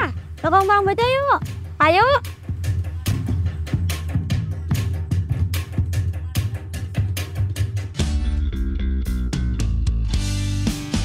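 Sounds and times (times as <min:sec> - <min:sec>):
drum kit beat: 0:00.0 - 0:11.0
low bass line: 0:08.0 - 0:11.0.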